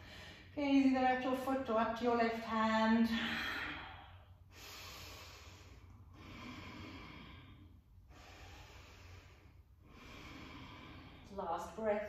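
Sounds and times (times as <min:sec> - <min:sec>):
woman breathing slowly: 0:00.0 - 0:00.6, 0:03.0 - 0:11.8.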